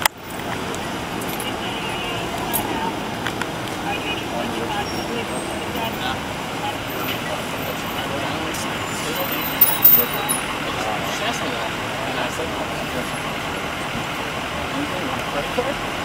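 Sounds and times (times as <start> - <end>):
city street traffic: 0.0 - 16.0.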